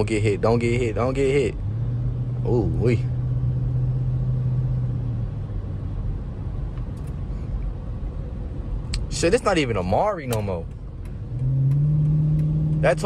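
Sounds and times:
car engine low note: 0.0s - 7.2s, 8.6s - 13.0s
tyre and road rumble: 10.0s - 13.0s.

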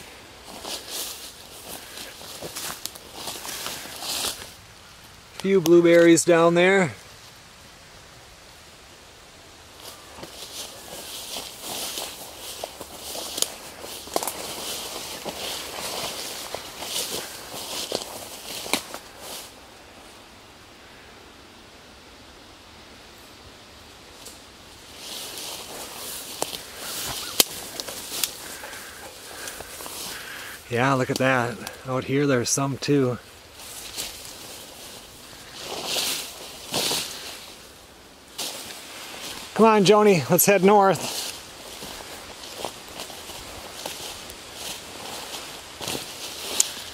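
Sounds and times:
footsteps through tall grass: 0.0s - 6.4s, 9.6s - 20.2s, 24.0s - 46.9s
leaves and stems crackling: 0.0s - 20.4s, 23.0s - 46.9s.

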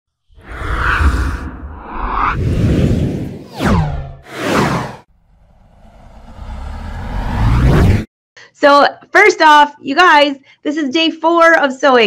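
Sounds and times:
rising whoosh: 0.3s - 8.1s
whoosh sound effects: 0.4s - 8.1s.

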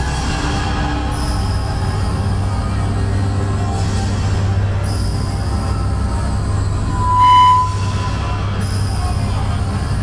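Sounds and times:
amplified band low drone: 0.0s - 10.0s
clear high tone: 6.8s - 8.4s.

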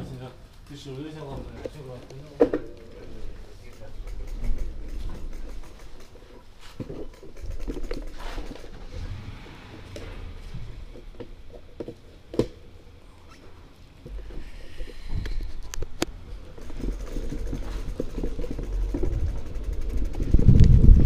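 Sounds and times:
low rumble: 7.4s - 11.8s.

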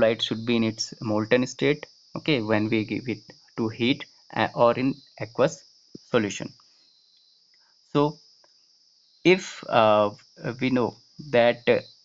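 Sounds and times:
person speaking: 0.0s - 6.5s, 9.3s - 11.8s
high-pitched hiss: 0.0s - 12.0s.

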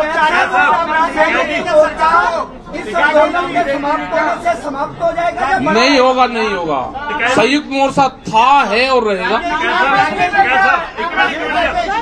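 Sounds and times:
man talking into a microphone: 0.0s - 12.0s
voices chattering: 0.0s - 12.0s.

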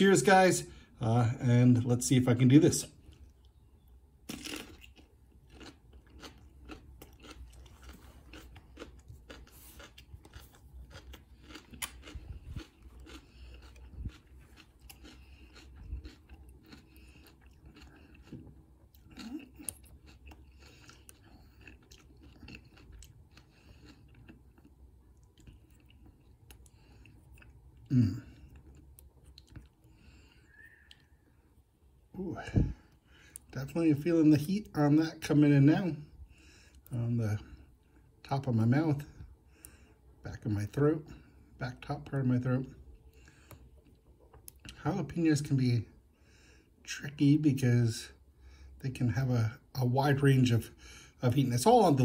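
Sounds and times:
person chewing crunchy food: 2.8s - 31.6s, 42.8s - 44.8s.

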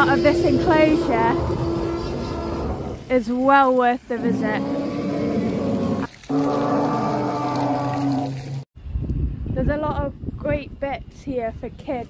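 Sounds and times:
low droning dinosaur bellows: 0.0s - 3.1s, 4.1s - 8.6s.

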